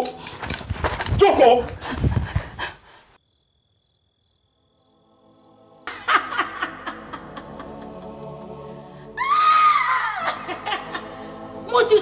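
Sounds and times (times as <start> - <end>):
person laughing: 5.9 - 8.1, 10.1 - 11.2.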